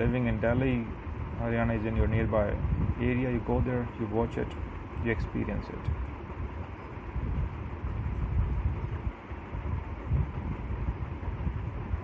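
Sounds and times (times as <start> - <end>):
low uneven rumbling: 0.0 - 12.0.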